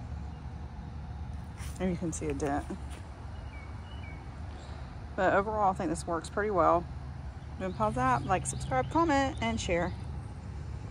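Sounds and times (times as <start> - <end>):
low outdoor rumble: 0.0 - 10.9
bird chirping: 2.2 - 4.9.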